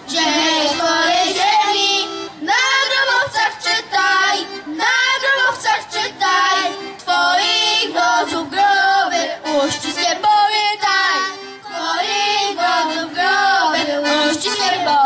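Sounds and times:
children singing into microphones: 0.0s - 15.0s.

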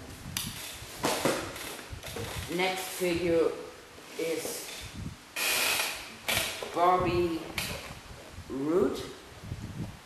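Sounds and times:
rustling and scraping: 0.2s - 3.4s, 4.0s - 8.4s.

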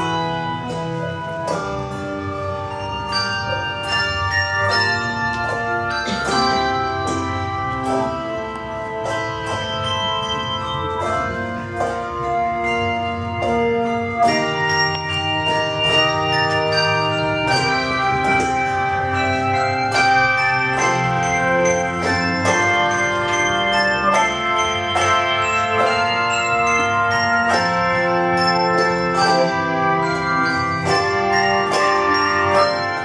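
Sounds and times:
handbell chords ringing: 0.0s - 33.0s.

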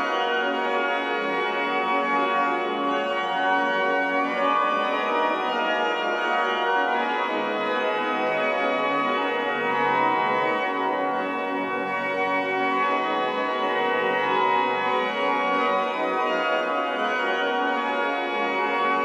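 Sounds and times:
pipe organ playing full chords: 0.0s - 19.0s
organ pedal bass line: 8.6s - 14.3s.

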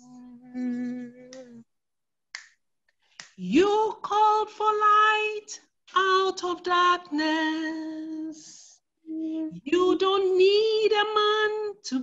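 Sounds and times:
woman singing unaccompanied: 0.0s - 1.6s, 3.4s - 8.7s, 9.3s - 12.0s.

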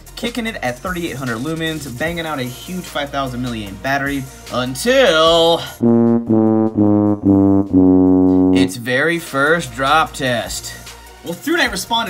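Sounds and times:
sad trombone notes: 5.8s - 8.8s.

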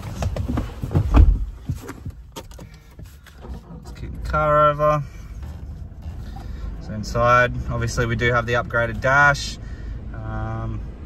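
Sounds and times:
rustling and handling noise: 0.0s - 4.1s, 5.0s - 6.9s
knocks and thumps in car cabin: 0.0s - 9.3s.

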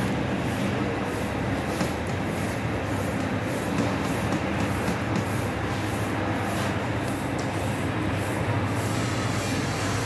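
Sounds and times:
bakery machinery running: 0.0s - 10.0s.

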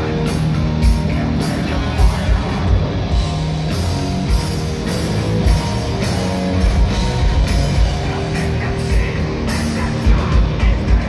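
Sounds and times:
bass guitar: 0.0s - 11.0s
distorted electric guitar: 0.0s - 11.0s
drum kit beat: 0.0s - 11.0s.

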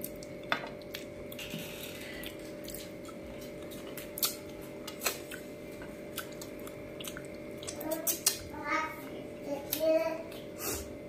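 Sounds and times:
wet mouth clicks while eating: 6.1s - 8.5s.

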